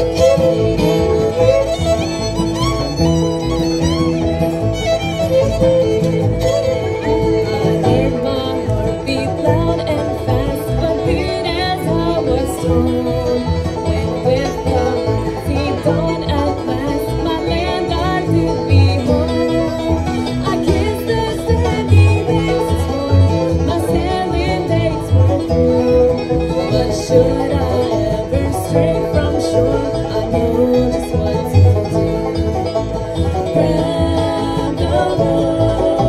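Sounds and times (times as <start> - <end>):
acoustic guitar: 0.0 - 36.0
banjo: 0.0 - 36.0
fiddle: 0.0 - 36.0
upright bass: 0.0 - 36.0
woman singing: 7.3 - 25.7, 26.4 - 32.6, 33.3 - 36.0.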